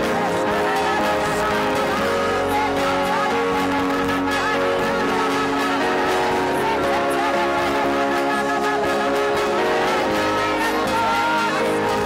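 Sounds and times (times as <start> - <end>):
amplified instrumental accompaniment: 0.0 - 12.0
group singing worship song: 0.0 - 12.0.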